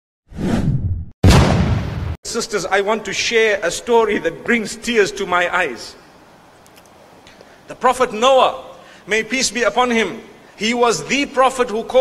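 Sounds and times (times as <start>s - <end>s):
whoosh sound effects: 0.3s - 2.2s.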